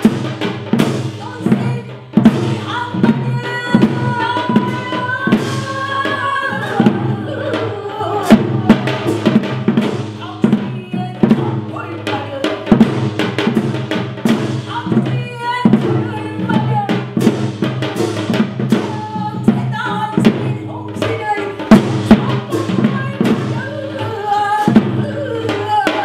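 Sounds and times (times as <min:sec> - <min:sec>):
drum strokes: 0:00.0 - 0:26.0
traditional ensemble music: 0:00.0 - 0:26.0.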